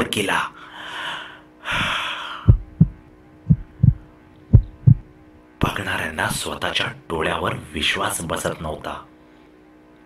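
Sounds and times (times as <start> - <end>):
heartbeat thumps: 2.5 - 5.2.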